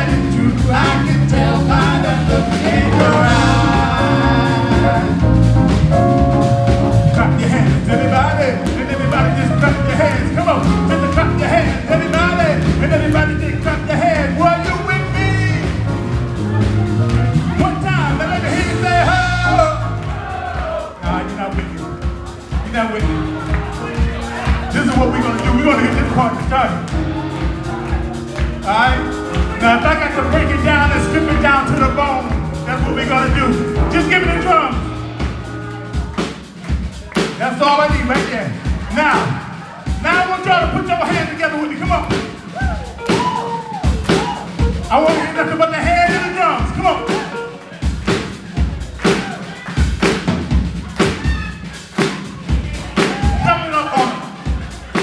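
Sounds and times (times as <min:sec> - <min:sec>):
person singing: 0:00.0 - 0:15.8, 0:16.5 - 0:22.0, 0:22.9 - 0:34.9
bass guitar: 0:00.0 - 0:55.0
drums: 0:00.0 - 0:55.0.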